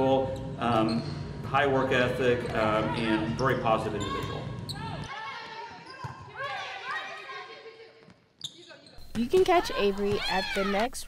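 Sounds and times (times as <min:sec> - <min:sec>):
players calling out: 0:09.0 - 0:11.0
volleyball struck: 0:09.0 - 0:11.0.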